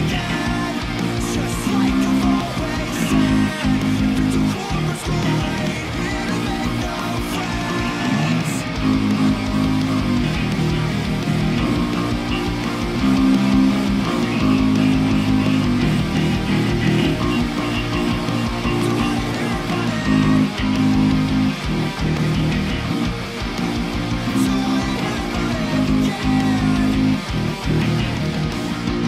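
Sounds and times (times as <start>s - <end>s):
electric bass notes: 0.0s - 29.0s
heavy pop-punk band music: 0.0s - 29.0s.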